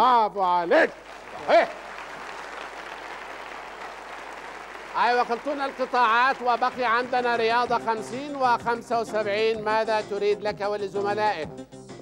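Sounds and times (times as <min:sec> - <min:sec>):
audience applauding: 0:00.8 - 0:08.4.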